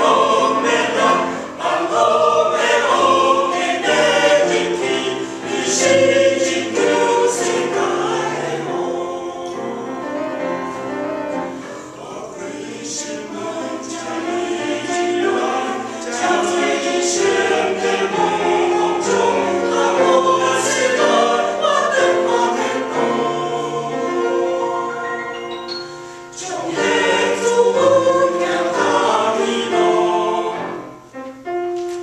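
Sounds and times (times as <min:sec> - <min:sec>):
mixed choir singing: 0:00.0 - 0:31.1.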